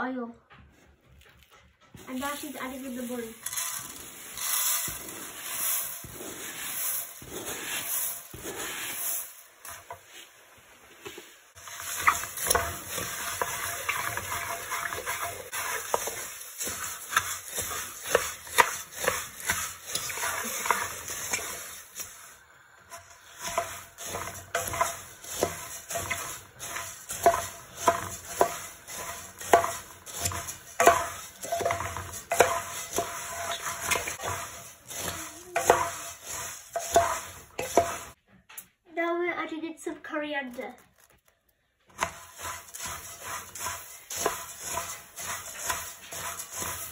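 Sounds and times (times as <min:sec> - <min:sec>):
spatula stirring puffed rice in pot: 0:02.0 - 0:38.2, 0:41.0 - 0:46.9.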